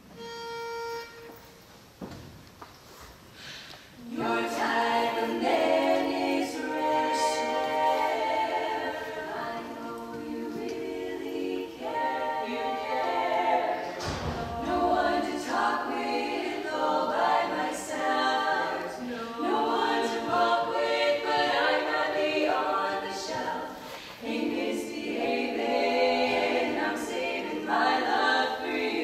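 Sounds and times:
women singing a cappella harmony: 0:04.0 - 0:29.0.

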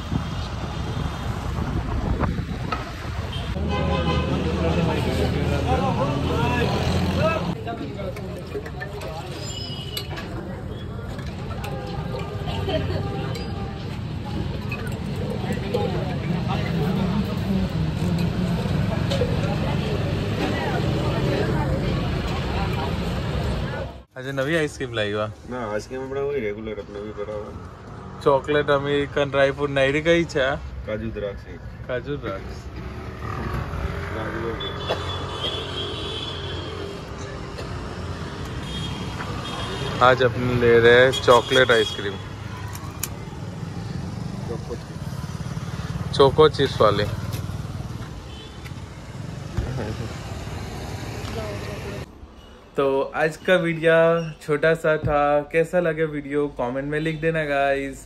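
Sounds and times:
traffic rumble: 0:00.0 - 0:58.0.

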